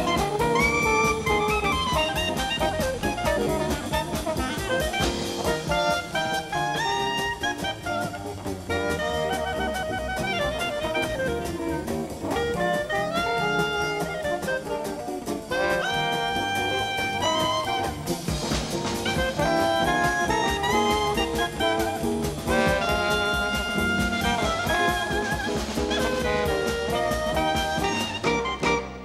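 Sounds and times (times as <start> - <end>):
clarinet melody: 0.0 - 29.0
double bass: 0.0 - 29.0
drum kit beat: 0.0 - 29.0
guitar: 0.0 - 29.0.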